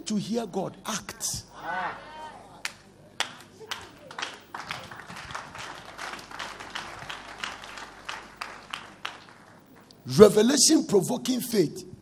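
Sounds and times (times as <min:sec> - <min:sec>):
congregation clapping: 0:02.6 - 0:10.0.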